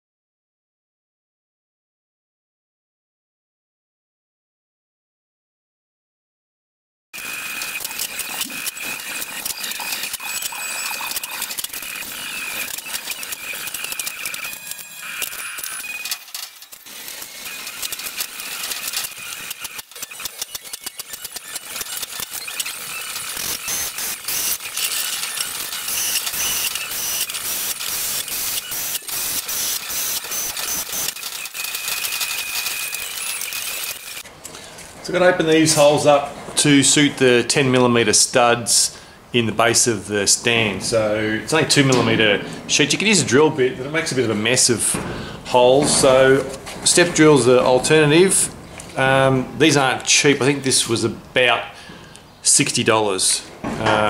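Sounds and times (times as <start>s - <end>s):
sheet metal clattering: 44.8s - 47.9s.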